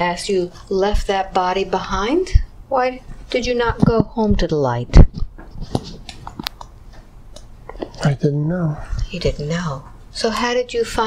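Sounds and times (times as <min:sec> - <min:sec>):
mouth clicks and lip smacks: 0:05.0 - 0:08.0.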